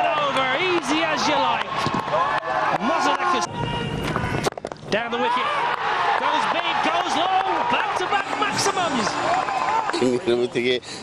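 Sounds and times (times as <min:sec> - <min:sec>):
voices: 0:04.9 - 0:10.8
television commentator speaking: 0:06.2 - 0:09.2.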